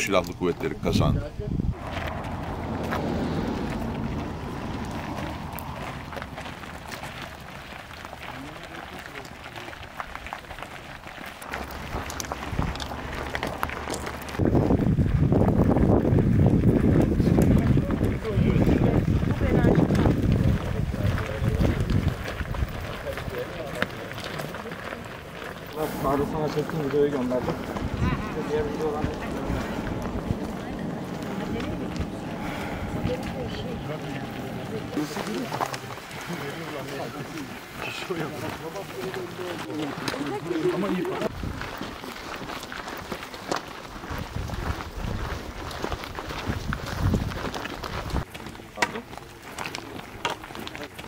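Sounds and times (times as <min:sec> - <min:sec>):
indistinct voices: 0:00.0 - 0:41.4
footsteps on gravel: 0:01.8 - 0:51.0.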